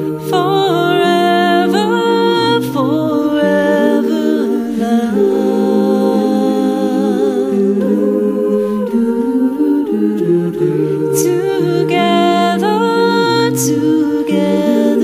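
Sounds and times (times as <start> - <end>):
a cappella group singing: 0.0 - 15.0.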